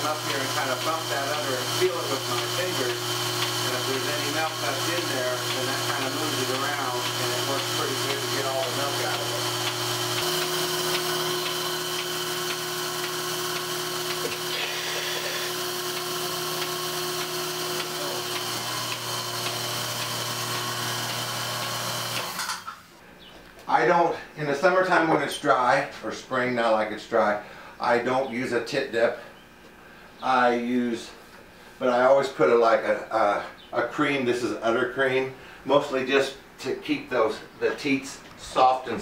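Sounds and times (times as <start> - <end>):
milking machine motor hum and hiss: 0.0 - 22.7.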